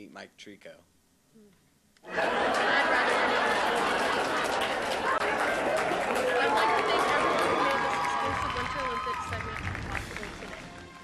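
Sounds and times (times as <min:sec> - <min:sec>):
indistinct talking: 0:02.1 - 0:10.6.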